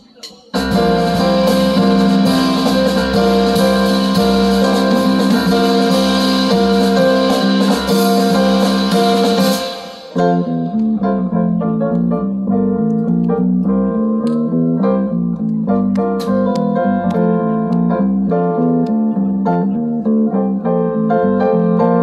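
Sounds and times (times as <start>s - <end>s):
jazz trio playing: 0.6s - 22.0s.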